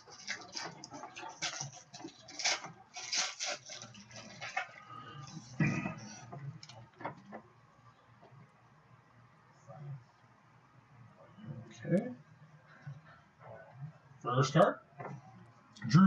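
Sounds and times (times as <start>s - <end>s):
foil wrapper crinkling and tearing: 0.1s - 4.8s.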